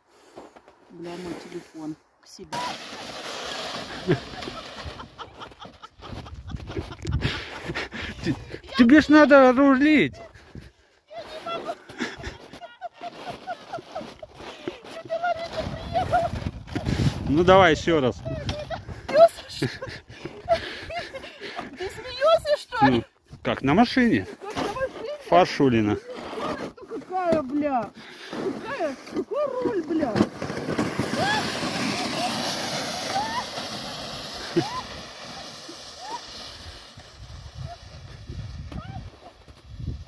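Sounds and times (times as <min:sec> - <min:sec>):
plastic sled sliding over snow: 0:02.5 - 0:23.0, 0:23.7 - 0:40.0
woman laughing: 0:03.9 - 0:08.8, 0:11.4 - 0:16.4, 0:18.4 - 0:23.0, 0:31.2 - 0:33.6, 0:34.4 - 0:35.0.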